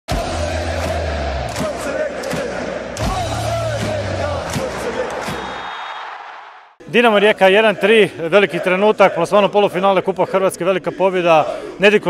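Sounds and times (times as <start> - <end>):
crowd cheering and chanting: 0.1 - 12.0.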